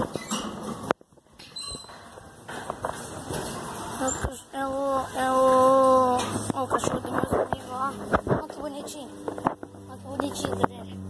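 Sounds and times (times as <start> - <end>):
gate hinges squealing: 0.1 - 2.3.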